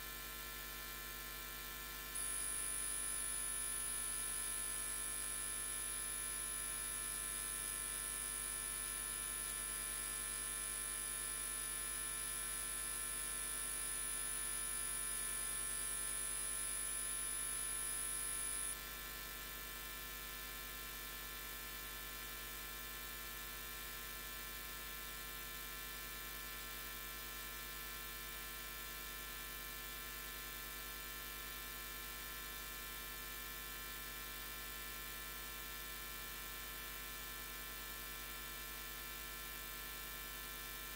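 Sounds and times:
thin high-pitched whine: 2.2s - 4.1s, 17.0s - 18.8s.

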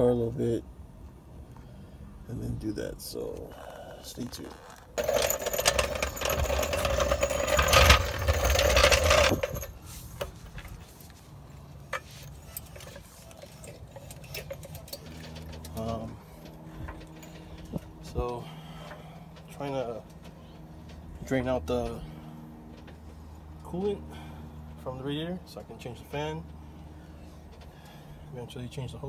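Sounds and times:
floor jack rolling over concrete: 5.0s - 10.3s.

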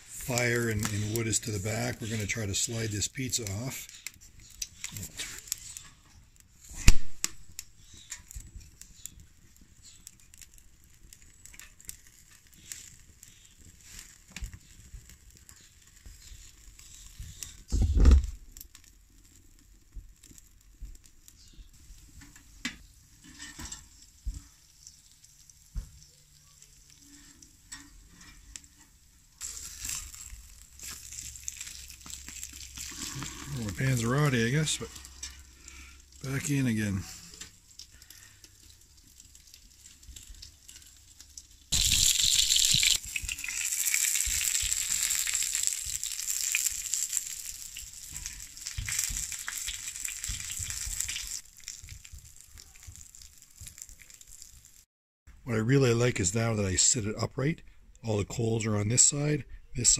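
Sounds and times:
pizza sizzling in pan: 0.0s - 54.9s
wood fire crackling: 0.0s - 59.9s
loud thump: 17.7s - 18.4s.

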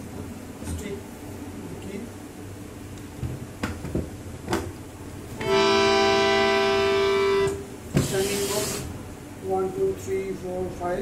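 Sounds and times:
harmonium held note: 5.4s - 7.7s.

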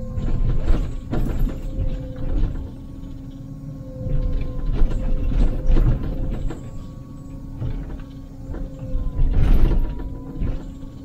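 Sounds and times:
excavator engine and hydraulics: 0.0s - 11.0s.

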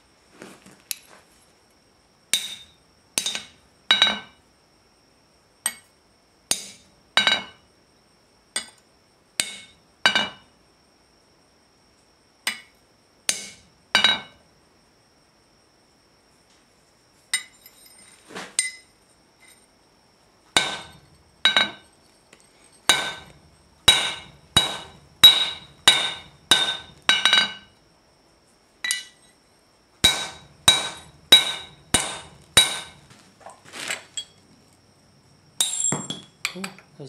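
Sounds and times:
hammer striking metal: 2.4s - 4.3s, 9.4s - 10.4s, 13.3s - 14.3s, 20.6s - 21.8s, 22.9s - 27.6s, 30.0s - 33.0s.

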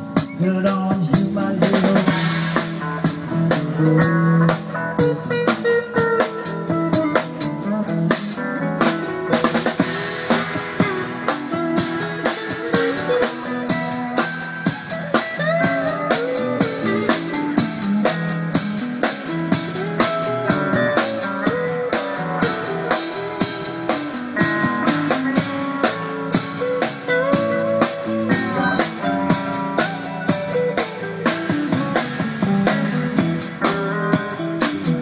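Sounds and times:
drum kit beat: 0.0s - 35.0s
guitar: 0.0s - 35.0s
keyboard melody: 2.1s - 35.0s.

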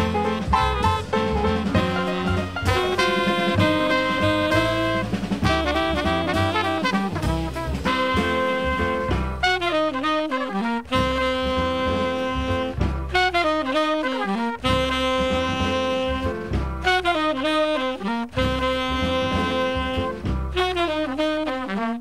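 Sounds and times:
bass and drums: 0.0s - 22.0s
trumpets and saxophone riff: 0.0s - 22.0s.

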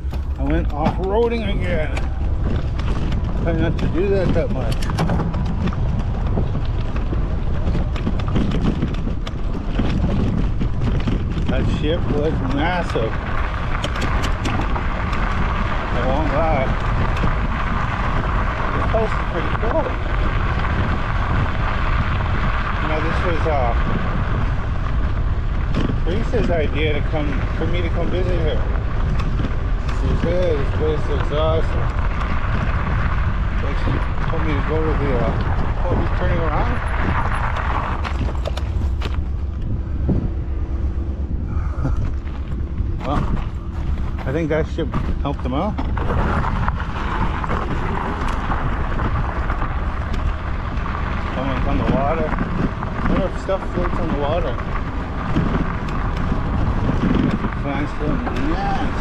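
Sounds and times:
tyres on gravel trail: 0.0s - 59.0s
wind rushing over microphone: 0.0s - 59.0s.

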